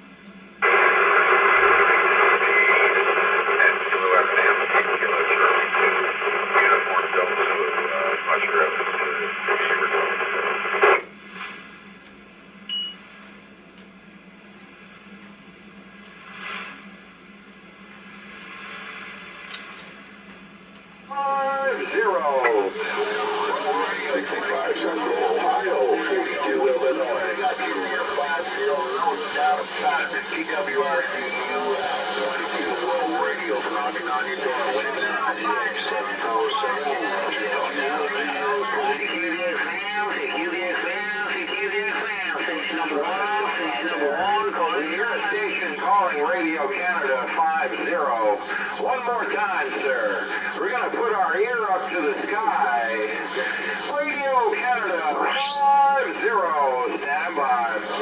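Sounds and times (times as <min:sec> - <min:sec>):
radio hiss: 0:00.0 - 0:11.9, 0:16.0 - 0:20.2, 0:21.0 - 0:58.0
garbled radio chatter: 0:00.6 - 0:11.1, 0:21.1 - 0:58.0
radio signal: 0:00.6 - 0:11.8, 0:16.1 - 0:17.0, 0:17.7 - 0:20.0, 0:21.0 - 0:58.0.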